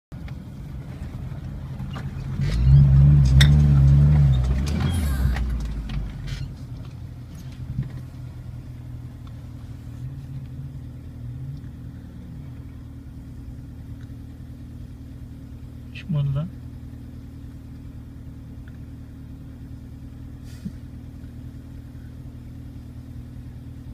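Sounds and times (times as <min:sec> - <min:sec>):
vehicle engine from inside cabin: 0:00.1 - 0:23.9.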